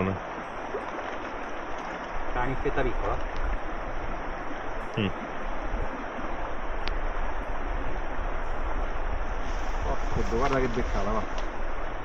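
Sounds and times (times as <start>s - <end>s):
rushing shallow river: 0.0s - 12.0s.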